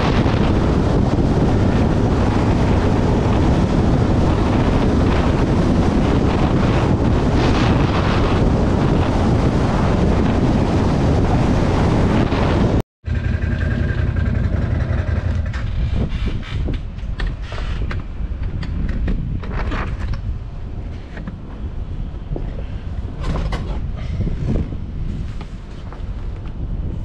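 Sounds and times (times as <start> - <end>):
motorcycle engine idling: 13.1 - 15.6.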